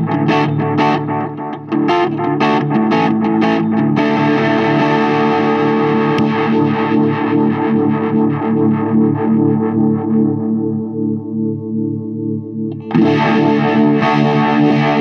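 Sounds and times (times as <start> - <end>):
distorted electric guitar: 0.0 - 15.0.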